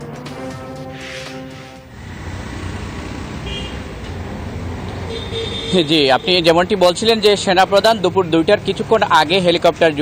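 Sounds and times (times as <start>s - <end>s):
traffic rumble: 1.9s - 10.0s
high horn toot: 3.4s - 3.9s, 5.1s - 6.3s.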